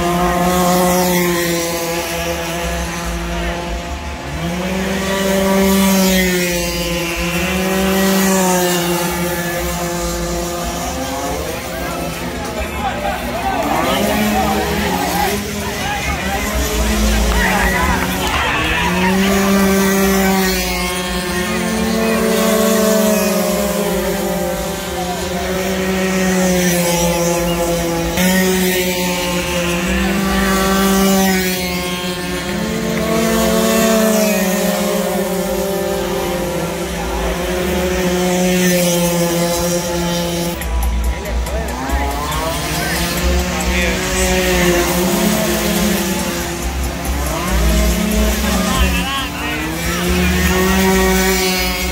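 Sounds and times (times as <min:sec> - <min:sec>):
crowd voices: 0:00.0 - 0:51.9
motorcycle engines revving: 0:00.0 - 0:51.9.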